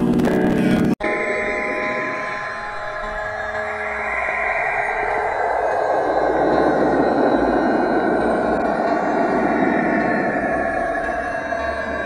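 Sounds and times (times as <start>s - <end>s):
dense noise drone: 0.0s - 12.0s.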